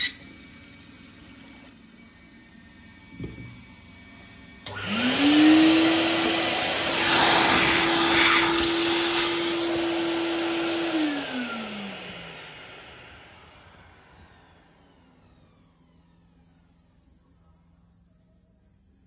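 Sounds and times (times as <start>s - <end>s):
vacuum cleaner whining: 0.0s - 17.1s
vacuum cleaner switch click: 4.6s - 5.0s.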